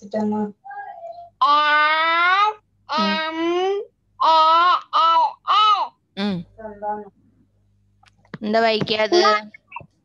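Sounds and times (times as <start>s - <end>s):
child's voice over video call: 0.0s - 5.9s.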